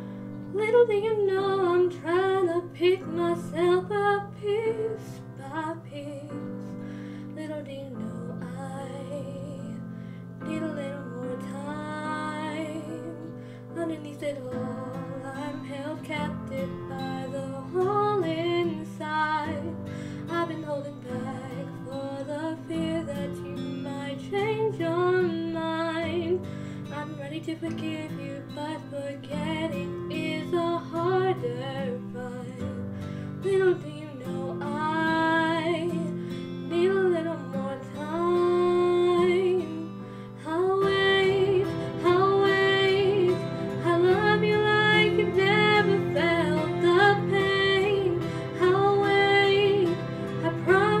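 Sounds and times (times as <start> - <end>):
woman singing: 0.0 - 51.0
karaoke backing track with guitar: 34.2 - 51.0.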